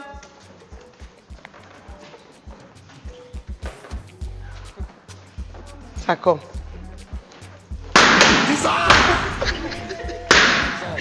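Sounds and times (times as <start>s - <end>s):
background music with low beat: 0.0s - 11.0s
balloons bursting: 7.9s - 9.6s.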